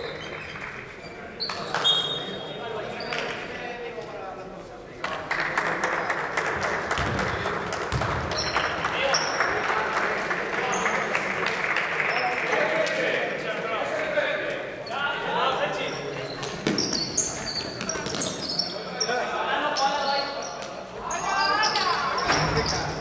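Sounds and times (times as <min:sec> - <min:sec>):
basketball bouncing on court: 0:06.9 - 0:08.9.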